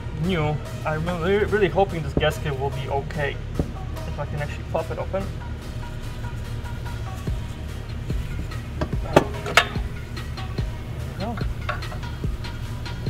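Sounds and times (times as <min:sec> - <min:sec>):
background music: 0:00.0 - 0:13.0
sharp knocks on metal cover: 0:08.8 - 0:10.0
soft clicks of cover prying: 0:11.4 - 0:12.1.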